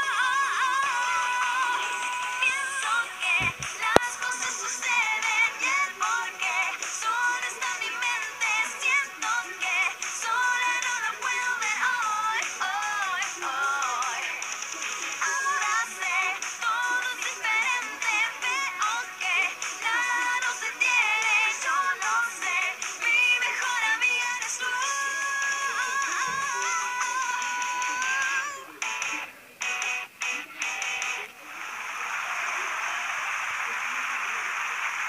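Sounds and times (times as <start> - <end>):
girls singing: 0.0 - 14.5, 15.2 - 28.6.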